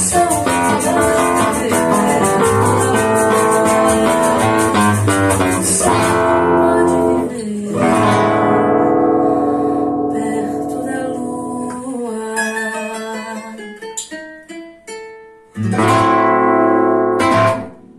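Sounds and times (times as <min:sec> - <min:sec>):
nylon-string acoustic guitar: 0:00.0 - 0:17.9.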